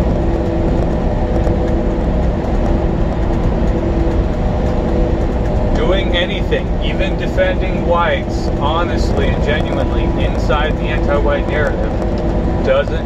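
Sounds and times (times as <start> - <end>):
faint steady hum: 0.0 - 13.0
road noise: 0.0 - 13.0
truck engine drone: 0.0 - 13.0.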